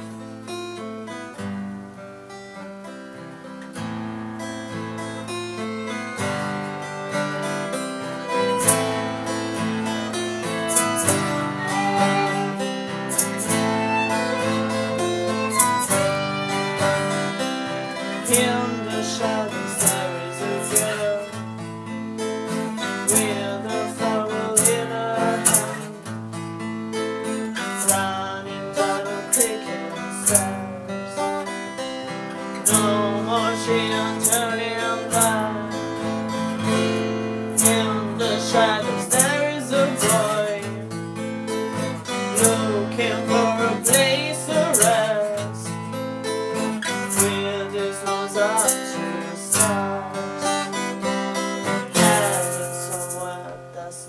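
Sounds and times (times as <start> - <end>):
acoustic guitar strumming: 0.0 - 54.0
violin folk melody: 4.2 - 52.7.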